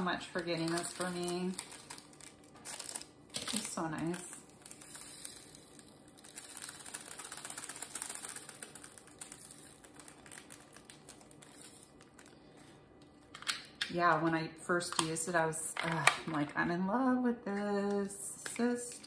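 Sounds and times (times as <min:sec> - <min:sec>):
plastic bag crinkling: 0:00.0 - 0:13.4
tiny beads clicking: 0:04.6 - 0:11.7.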